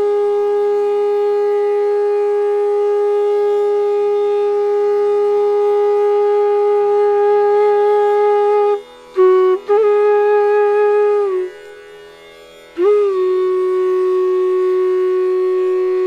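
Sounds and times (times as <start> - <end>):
bamboo flute long note: 0.0 - 11.8, 12.7 - 16.0.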